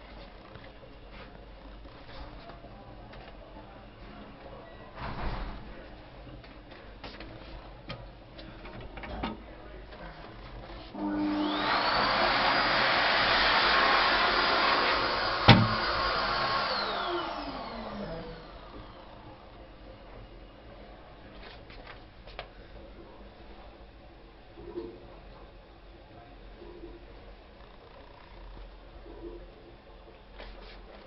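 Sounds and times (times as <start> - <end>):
electric motor whining: 10.9 - 19.4.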